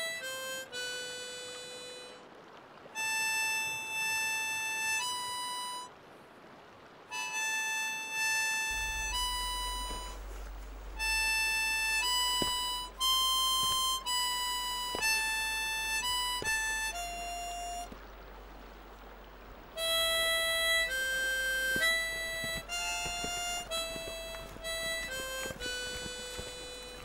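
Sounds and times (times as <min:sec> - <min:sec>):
harmonica playing slow melody: 0:00.0 - 0:02.3, 0:03.0 - 0:05.9, 0:07.1 - 0:27.0.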